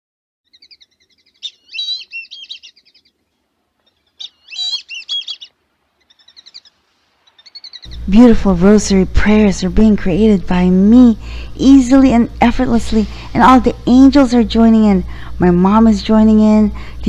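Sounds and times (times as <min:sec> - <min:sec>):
bird chirping and warbling: 0:00.5 - 0:03.2, 0:03.8 - 0:08.2.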